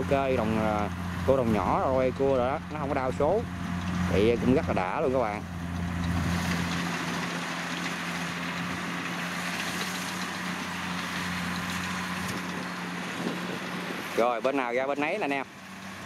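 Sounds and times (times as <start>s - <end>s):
diesel engine drone: 0.0s - 16.0s.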